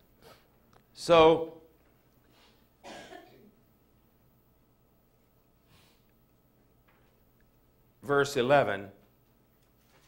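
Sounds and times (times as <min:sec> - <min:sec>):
man coughing: 0:02.8 - 0:03.6.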